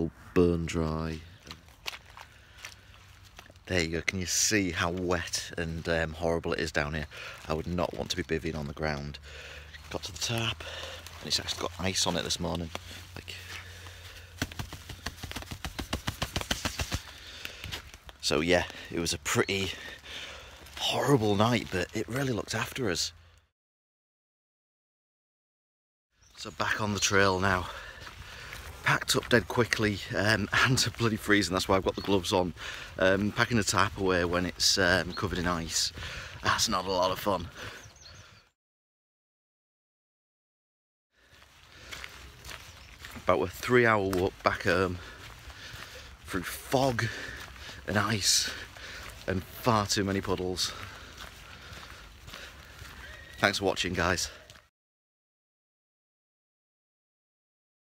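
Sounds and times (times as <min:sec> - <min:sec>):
faint outdoor noise: 0:00.0 - 0:23.5
footsteps on a trail: 0:01.0 - 0:23.0, 0:26.5 - 0:38.4, 0:41.2 - 0:54.7.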